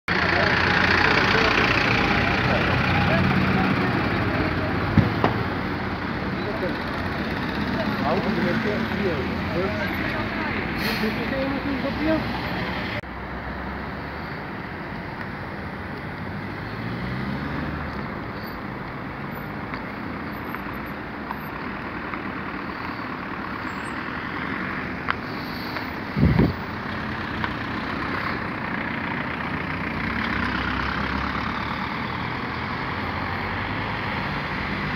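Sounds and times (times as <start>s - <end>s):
highway traffic: 0.1s - 34.9s.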